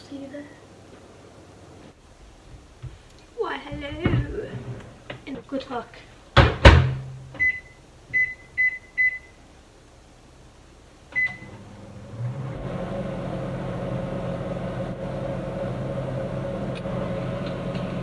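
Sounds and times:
microwave keypad beeps: 7.4 - 9.3, 11.2 - 11.5
microwave oven humming: 11.1 - 18.0.

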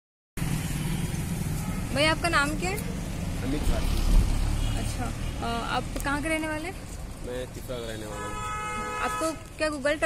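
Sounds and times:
low rumble of vehicle engines: 0.4 - 10.0.

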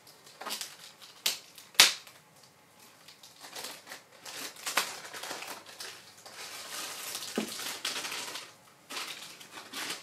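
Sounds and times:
plastic bag crinkling: 0.0 - 2.2, 2.8 - 10.0.

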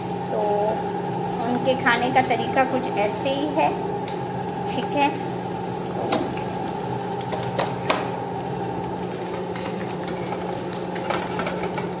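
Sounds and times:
eggs sizzling in oil: 0.0 - 12.0.

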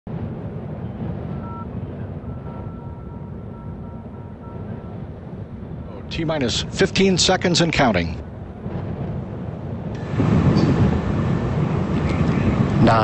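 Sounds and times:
wind buffeting microphone: 0.1 - 13.0
faint high steady tone: 1.2 - 6.2.

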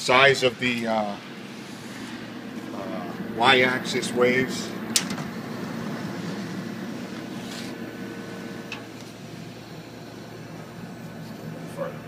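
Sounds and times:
machine mechanical hum: 0.0 - 12.0.

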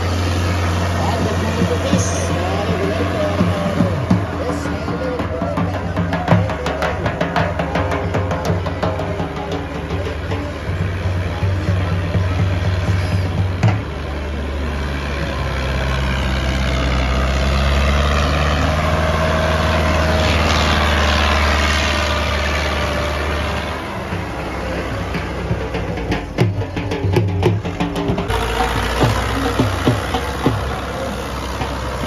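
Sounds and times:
tractor diesel engine under load: 0.0 - 32.0
dhol drumming: 1.0 - 14.0, 24.0 - 32.0.

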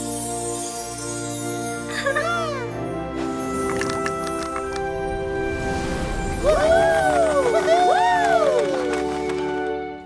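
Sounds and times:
background music: 0.0 - 10.0
cartoon voices cheering: 6.4 - 8.9.

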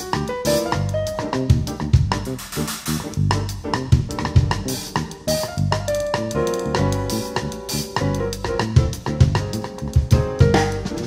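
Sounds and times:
drum kit latin jazz groove: 0.0 - 11.0
piano and bass backing track: 0.0 - 11.0.

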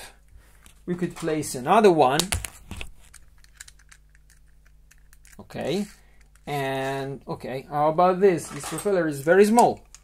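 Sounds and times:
plastic bricks clicking together: 3.1 - 5.4.

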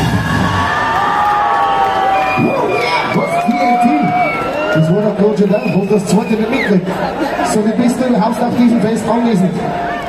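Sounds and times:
crowd cheering: 0.0 - 10.0
people shouting: 0.4 - 4.9
long whistles: 1.8 - 6.8.

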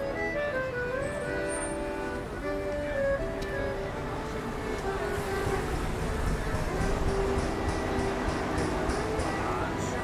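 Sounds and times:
accordion playing melody: 0.0 - 10.0
traffic rumbling: 0.0 - 10.0.

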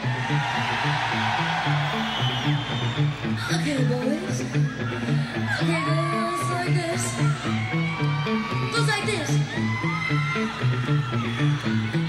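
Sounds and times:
distorted guitar: 0.0 - 12.0.

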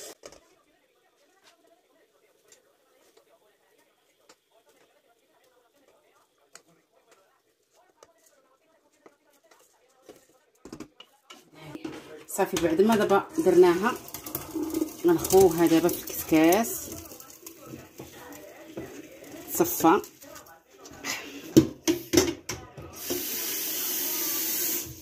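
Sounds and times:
wooden spoon tapping metal pot: 10.6 - 20.5.

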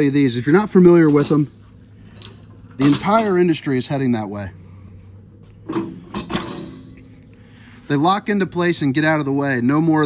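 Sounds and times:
metal steps clacking: 5.6 - 7.0.

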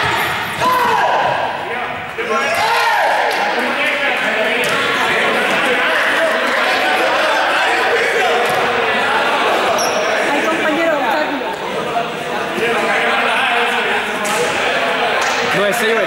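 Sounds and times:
young people talking: 3.4 - 16.0.

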